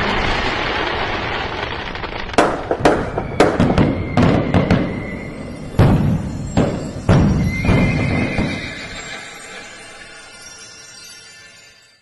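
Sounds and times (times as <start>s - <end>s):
fireworks bangs and crackles: 0.0s - 10.8s
fireworks hissing: 0.0s - 11.6s.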